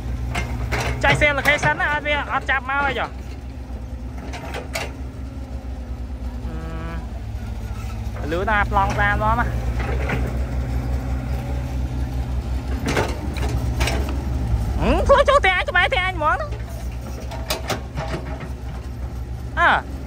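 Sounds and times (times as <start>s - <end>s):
excavator diesel engine running: 0.0s - 20.0s
person's voice: 8.2s - 9.6s, 14.8s - 16.6s.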